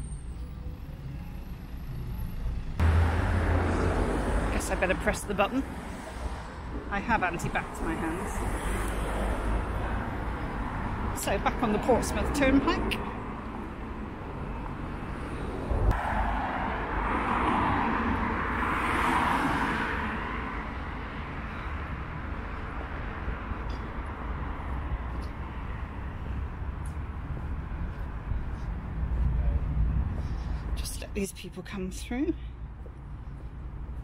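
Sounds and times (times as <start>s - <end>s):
road traffic rumble: 0.0s - 34.0s
vehicle passing by: 2.7s - 6.7s.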